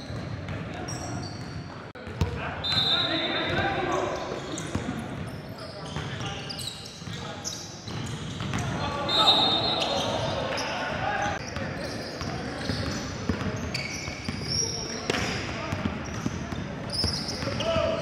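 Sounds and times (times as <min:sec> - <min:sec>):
sneakers squeaking: 0:00.0 - 0:18.0
players calling out: 0:07.4 - 0:12.8.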